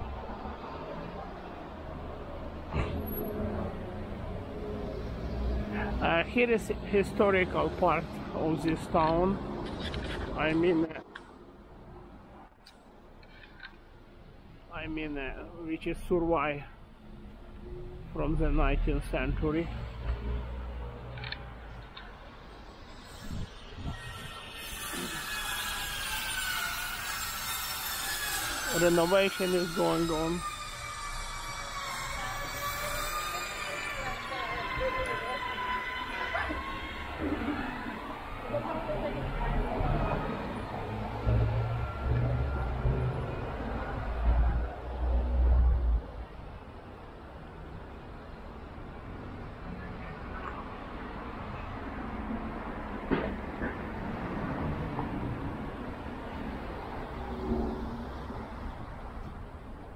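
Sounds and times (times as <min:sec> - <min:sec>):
street traffic rumble: 0:00.0 - 0:59.9.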